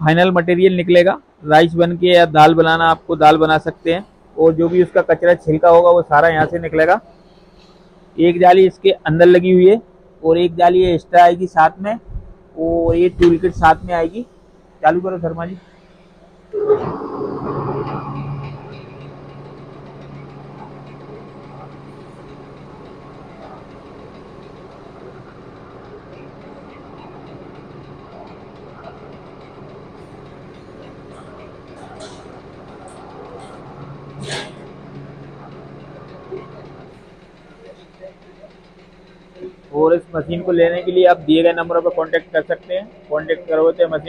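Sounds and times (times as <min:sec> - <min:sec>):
electric motor starting and humming: 0:13.0 - 0:44.0.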